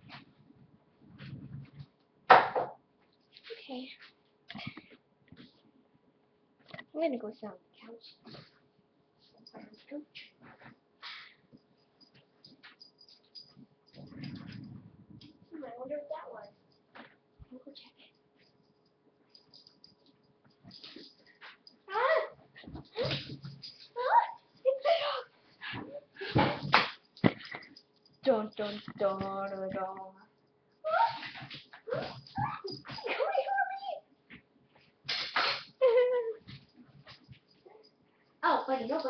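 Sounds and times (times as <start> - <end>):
faint clicks and shuffling: 0.0 - 2.2, 3.0 - 5.9, 6.6 - 35.0, 35.9 - 39.0.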